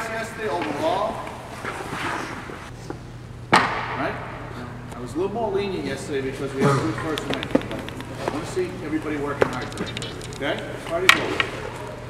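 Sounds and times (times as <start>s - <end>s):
faint voices: 6.6s - 12.0s.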